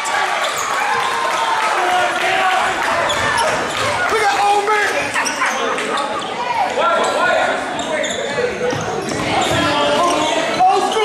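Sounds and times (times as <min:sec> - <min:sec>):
players calling indistinctly: 0:00.0 - 0:11.0
sneakers squeaking: 0:00.4 - 0:01.1, 0:03.0 - 0:04.0, 0:05.0 - 0:11.0.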